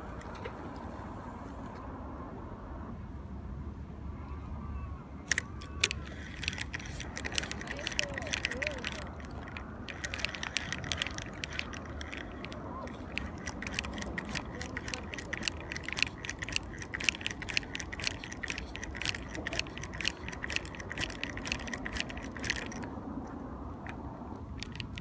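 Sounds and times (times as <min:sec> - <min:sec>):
fishing reel clicks: 0:05.3 - 0:22.9, 0:24.6 - 0:25.0
metallic ticking of cranked reel: 0:05.3 - 0:22.9.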